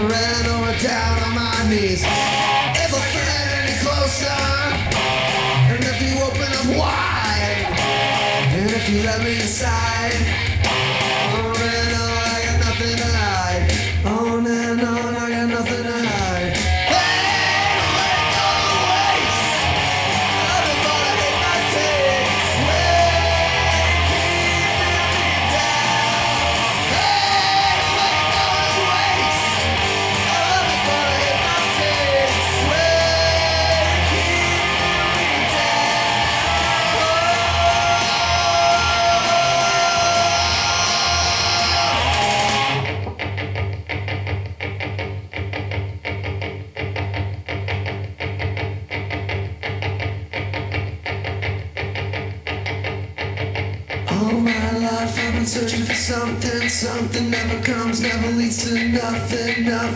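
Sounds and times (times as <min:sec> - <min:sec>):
rock guitar music: 0:00.0 - 0:59.9.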